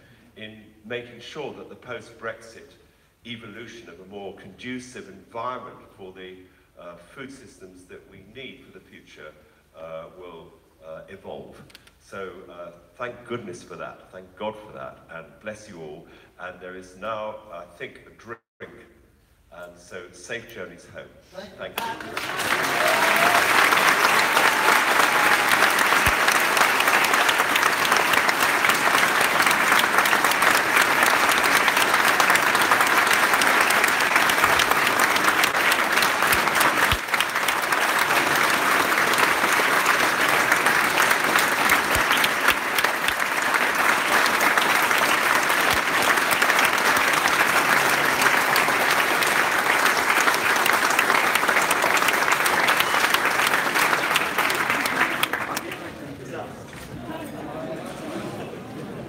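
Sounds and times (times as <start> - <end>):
audience applauding: 21.8 - 56.2.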